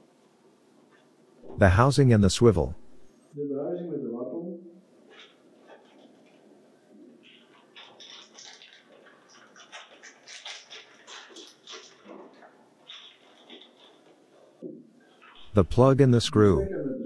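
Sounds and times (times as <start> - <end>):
plastic bag crinkling: 7.2 - 14.5.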